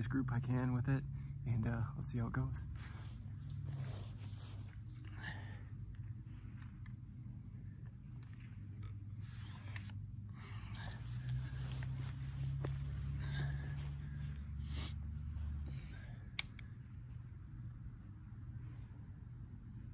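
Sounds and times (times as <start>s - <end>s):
steady low hum: 0.0s - 19.9s
soft handling noises: 2.4s - 19.9s
clothing rustling: 2.6s - 15.9s.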